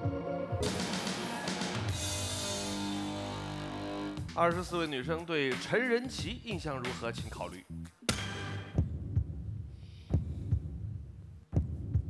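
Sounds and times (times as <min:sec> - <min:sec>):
synthesized heartbeat thumps: 0:08.2 - 0:12.0.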